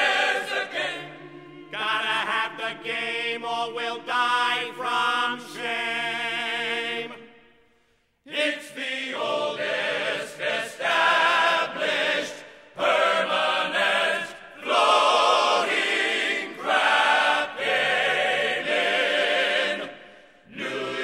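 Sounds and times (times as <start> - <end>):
male ensemble singing in harmony: 0.0 - 7.3, 8.3 - 21.0.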